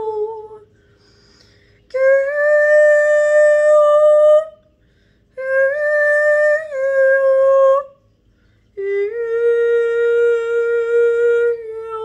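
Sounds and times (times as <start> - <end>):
woman singing long note: 1.9 - 4.6, 5.4 - 8.0, 8.8 - 12.0.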